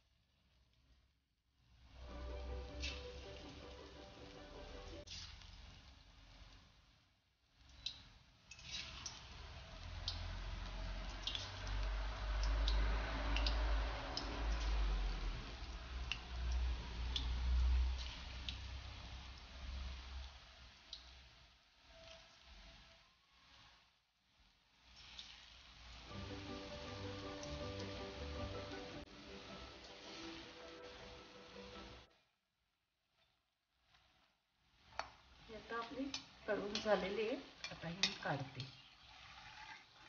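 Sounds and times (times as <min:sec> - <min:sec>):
deep-frying sizzle with pops: 0:00.0 - 0:32.4, 0:33.0 - 0:40.0.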